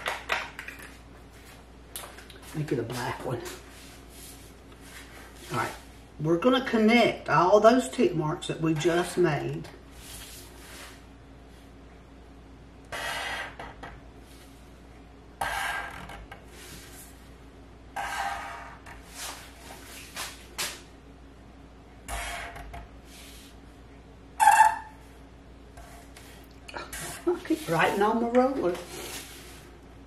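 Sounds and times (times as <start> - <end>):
faint steady hum: 0.0 - 30.0
marker scratching on board: 12.9 - 13.7, 15.4 - 16.2, 18.0 - 19.4, 22.1 - 22.7.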